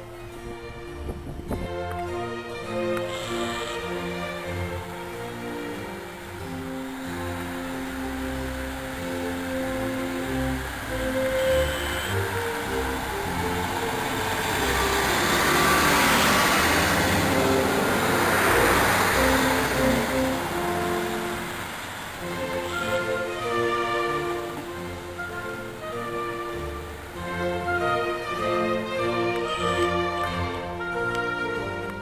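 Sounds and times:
background music with strings: 0:00.0 - 0:32.0
diesel train passing: 0:00.0 - 0:32.0.

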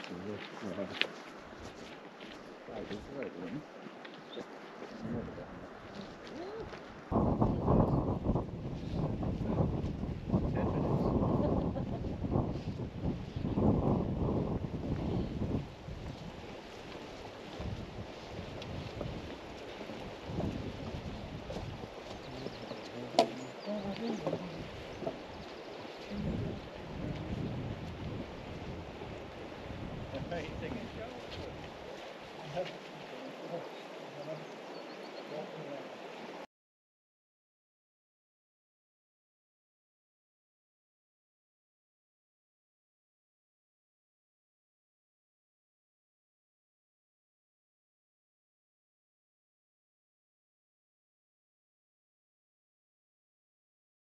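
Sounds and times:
wind gusting on microphone: 0:04.5 - 0:36.4.

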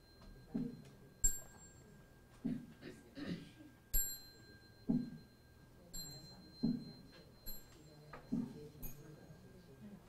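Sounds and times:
handbell ringing: 0:00.0 - 0:02.0, 0:03.9 - 0:08.1.

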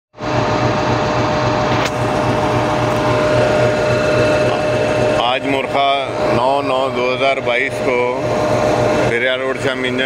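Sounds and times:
constant whine: 0:00.2 - 0:10.0
diesel locomotive idling: 0:00.5 - 0:10.0.

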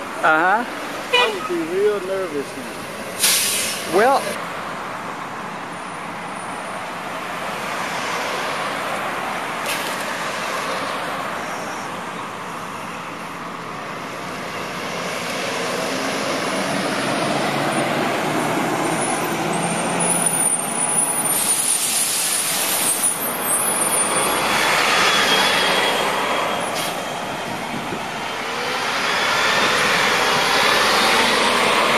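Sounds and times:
buses driving past: 0:00.0 - 0:31.9.

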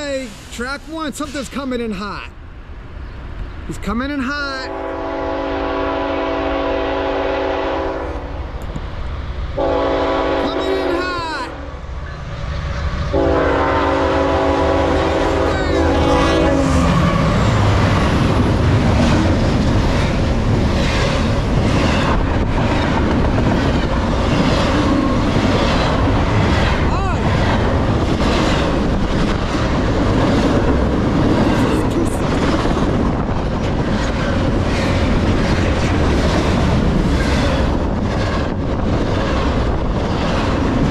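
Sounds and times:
train passing with rumble: 0:00.0 - 0:40.9
locomotive air horn: 0:04.7 - 0:08.2, 0:09.6 - 0:11.0, 0:13.1 - 0:17.2.

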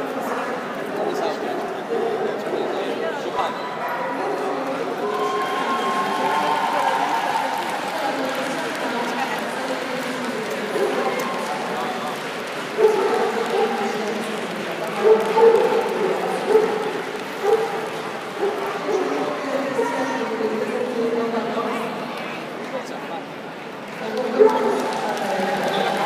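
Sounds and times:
crowd murmur in a large hall: 0:00.0 - 0:26.0.

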